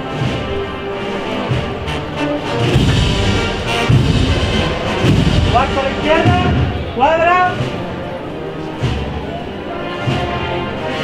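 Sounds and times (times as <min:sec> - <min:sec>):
wind band playing slow march: 0:00.0 - 0:11.0.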